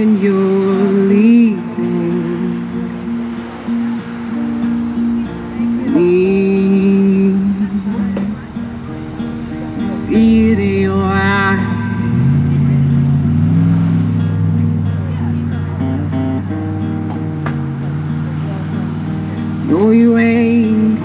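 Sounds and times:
young man singing: 0:00.0 - 0:03.2, 0:05.6 - 0:08.7, 0:09.7 - 0:13.0, 0:19.3 - 0:21.0
acoustic guitar chords: 0:00.0 - 0:21.0.

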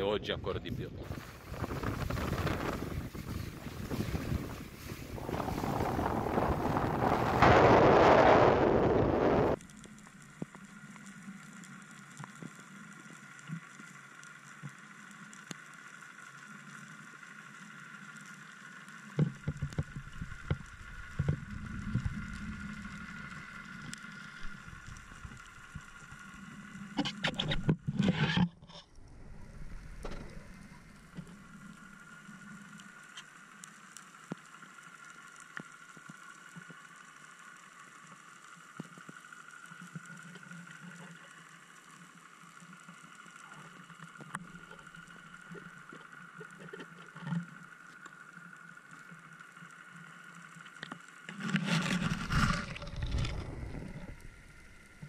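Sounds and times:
steady high underwater hum: 0:00.0 - 0:55.0
rushing water burst: 0:01.0 - 0:09.6.

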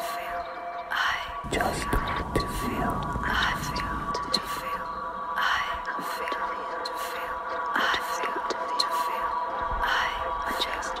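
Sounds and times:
layered whispers: 0:00.9 - 0:11.0
sustained tones: 0:01.4 - 0:07.7.

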